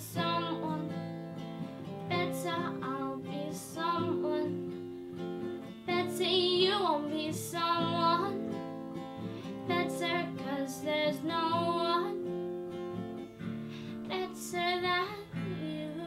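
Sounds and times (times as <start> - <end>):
strummed acoustic guitar: 0.0 - 16.0.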